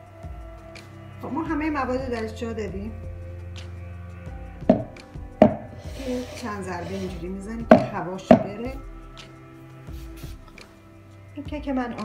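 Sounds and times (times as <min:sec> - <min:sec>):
metal pan thudding on countertop: 0:04.7 - 0:05.8, 0:07.7 - 0:08.6.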